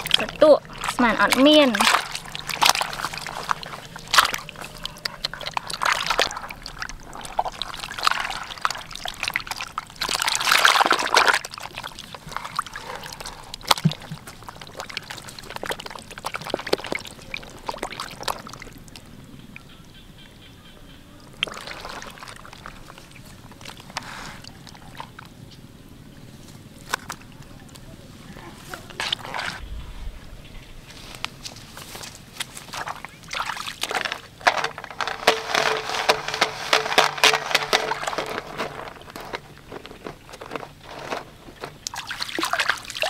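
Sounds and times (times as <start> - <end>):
water splashing in plastic basin: 0.0 - 19.1, 21.3 - 25.2, 32.6 - 43.0.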